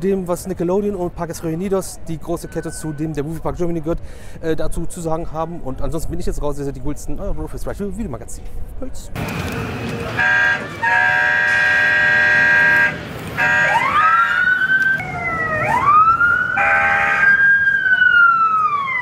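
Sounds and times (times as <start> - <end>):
electronic horn honk: 10.0 - 14.4
electronic siren wails: 10.2 - 19.0.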